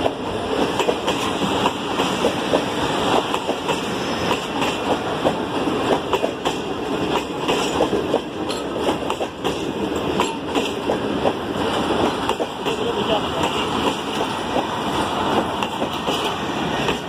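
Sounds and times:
train running noise: 0.0 - 17.0
train wheels clattering over rail joints: 0.0 - 17.0.

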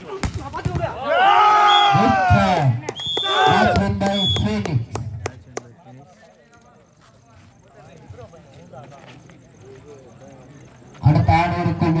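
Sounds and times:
faint chatter of voices: 5.3 - 11.6.

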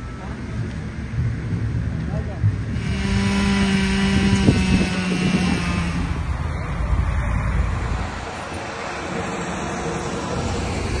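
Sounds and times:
street noise: 0.0 - 11.0
vehicle engine humming: 0.0 - 11.0.

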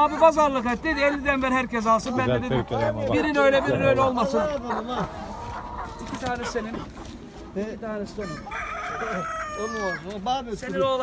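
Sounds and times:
rooster crowing: 8.2 - 10.1.

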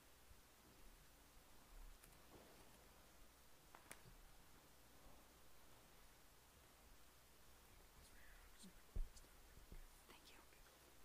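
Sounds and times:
faint whispering: 7.6 - 11.0.

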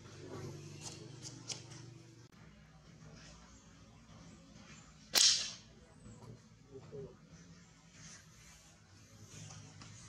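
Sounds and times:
sharp snap: 5.1 - 5.6.

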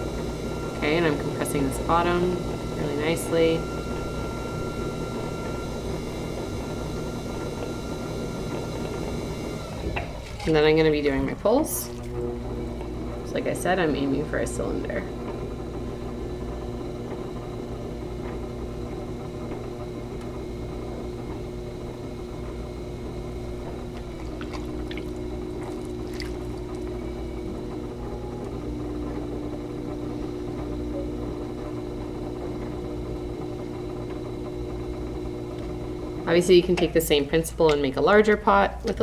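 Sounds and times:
potter's wheel motor hum: 0.0 - 39.0
light water splashes: 24.2 - 26.8.

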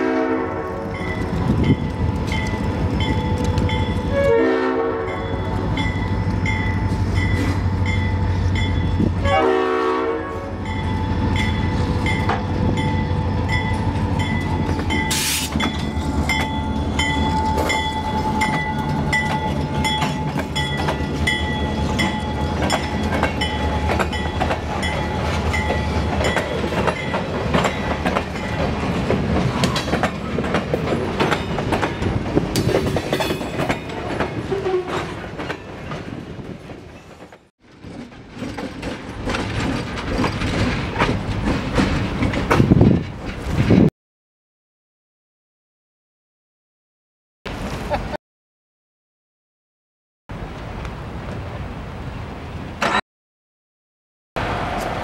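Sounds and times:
locomotive horn blasts: 0.0 - 1.0, 4.0 - 5.6, 9.1 - 10.7
crossing bell dinging: 5.0 - 9.3, 10.5 - 28.8
train wheels clicking over rail joints: 13.5 - 43.9.

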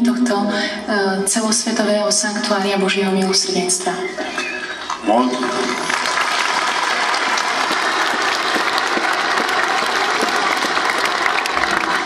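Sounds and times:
crowd applauding: 4.7 - 12.0.

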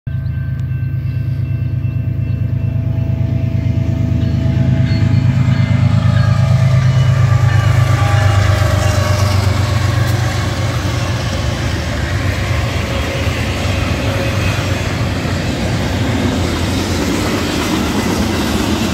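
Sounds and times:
diesel locomotive engine rumble: 0.1 - 18.9
steel wheels rolling on rail: 0.1 - 18.9.

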